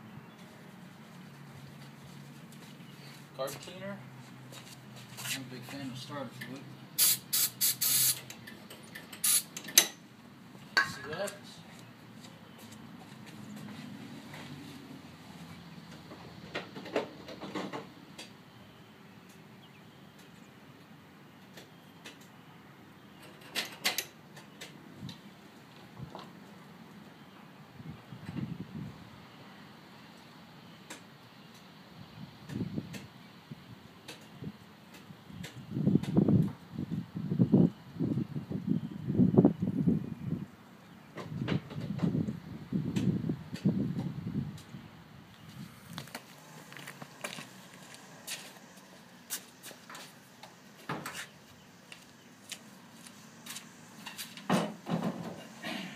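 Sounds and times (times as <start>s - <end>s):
aerosol spray hissing: 7.0s - 8.2s, 9.2s - 9.5s.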